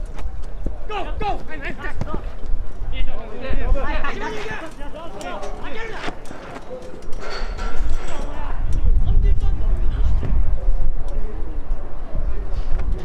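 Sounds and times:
players shouting: 0.8s - 2.5s, 3.1s - 7.0s.

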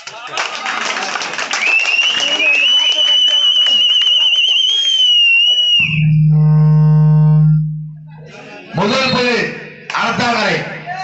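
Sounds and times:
low electric buzz: 5.8s - 8.3s
high warbling feedback squeal: 5.8s - 9.4s.

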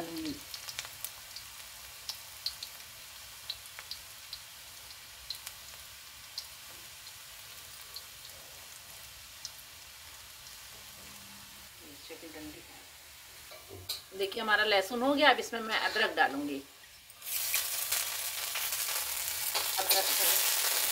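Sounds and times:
garlic sizzling in oil: 0.0s - 20.9s.

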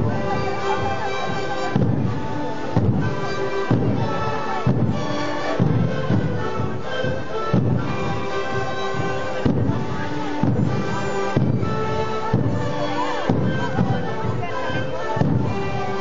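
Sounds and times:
panpipes playing a melody: 0.0s - 16.0s
bass drum strikes: 1.7s - 6.5s, 9.0s - 12.7s, 13.3s - 14.4s, 15.2s - 15.5s.

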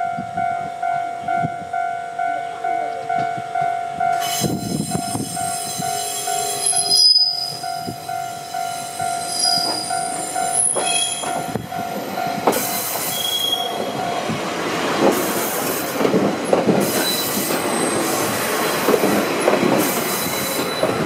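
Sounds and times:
rumble of train wheels: 0.0s - 21.0s
train wheels squealing: 4.2s - 8.1s, 8.7s - 11.5s, 12.6s - 13.9s, 16.8s - 18.3s, 19.8s - 21.0s.

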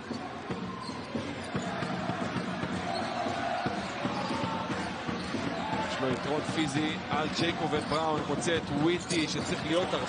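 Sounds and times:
arena crowd noise: 0.0s - 10.0s
basketball bouncing on hardwood: 0.1s - 9.6s.

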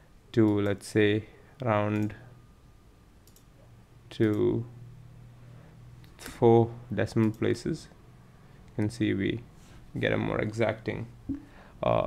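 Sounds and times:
faint computer mouse clicks: 3.2s - 3.5s.

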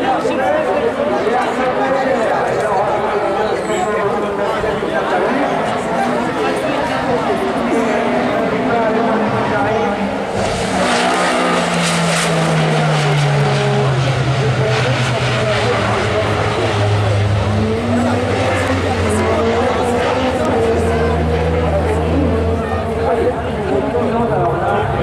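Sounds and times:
spectators' voices: 0.0s - 25.0s
race car engine running: 6.2s - 25.0s.

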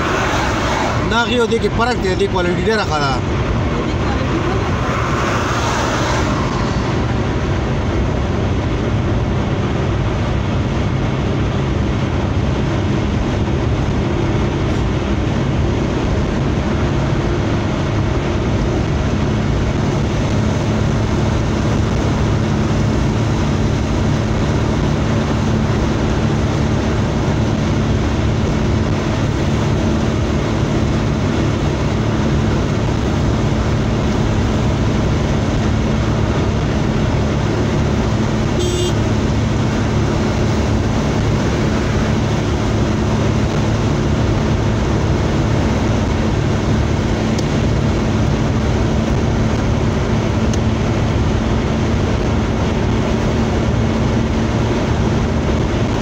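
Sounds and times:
road and engine drone in car: 0.0s - 56.0s.

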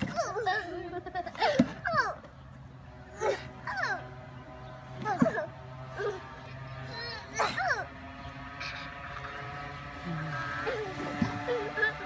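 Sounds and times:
steady mechanical hum: 0.0s - 12.0s
young children vocalizing: 5.0s - 8.0s, 10.0s - 12.0s.

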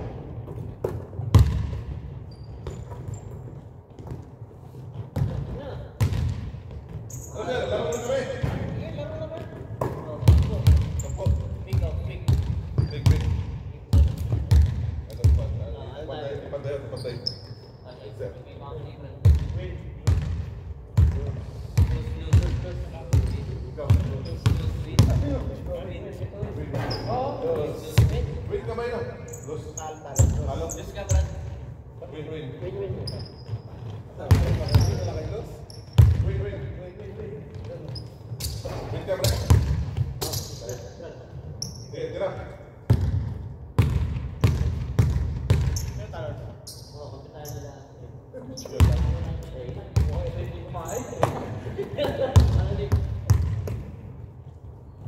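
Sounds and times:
basketballs bouncing on wooden floor: 0.0s - 7.1s, 8.4s - 15.6s, 19.2s - 25.8s, 33.5s - 35.2s, 36.0s - 36.4s, 38.6s - 40.4s, 42.9s - 45.9s, 51.2s - 54.0s.

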